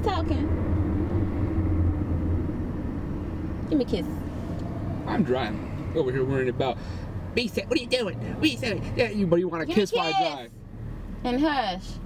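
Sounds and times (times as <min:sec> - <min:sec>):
car engine and road noise: 0:00.0 - 0:12.0.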